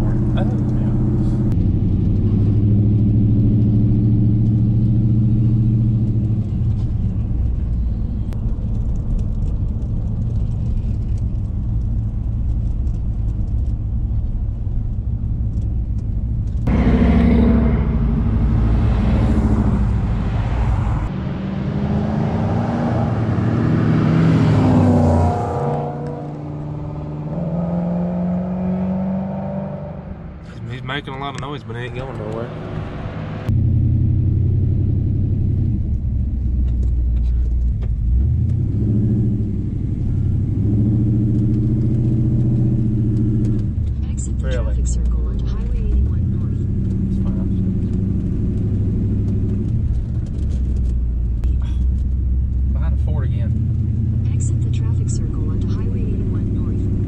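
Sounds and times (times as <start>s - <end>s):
cars passing by: 0.0s - 11.7s, 16.6s - 57.0s
truck engine cruising: 0.0s - 57.0s.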